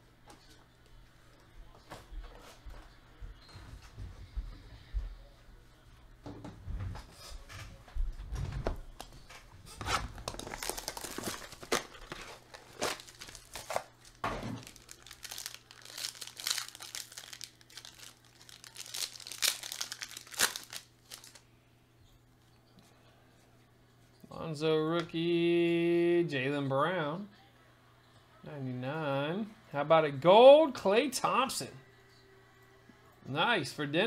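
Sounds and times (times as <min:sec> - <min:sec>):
foil wrapper crinkling and tearing: 0:09.8 - 0:21.4.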